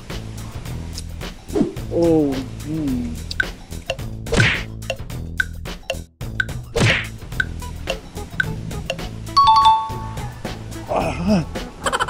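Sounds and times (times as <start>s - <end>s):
background music: 0.0s - 12.0s
two-note ding-dong chime: 9.4s - 10.3s.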